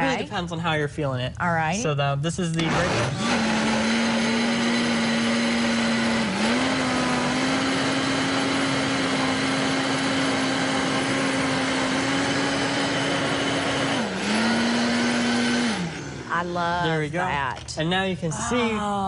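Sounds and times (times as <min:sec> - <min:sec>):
blender running: 0:02.6 - 0:17.2.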